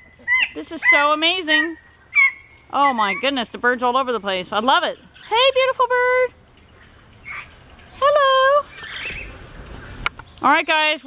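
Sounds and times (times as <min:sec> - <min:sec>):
loud nasal bird call: 0:06.8 - 0:10.7.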